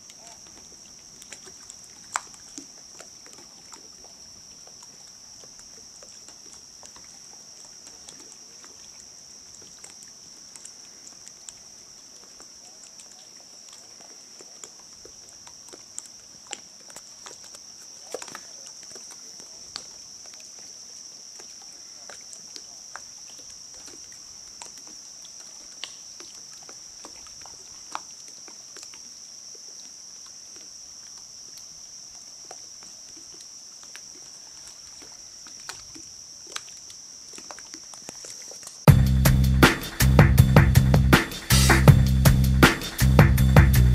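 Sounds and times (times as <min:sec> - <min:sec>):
faint clicks and ticks: 0:00.0 - 0:20.7
insect chorus: 0:00.0 - 0:43.9.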